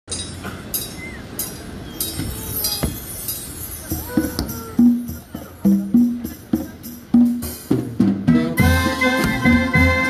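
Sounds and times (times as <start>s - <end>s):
cymbals crashing: 0.1s - 5.6s.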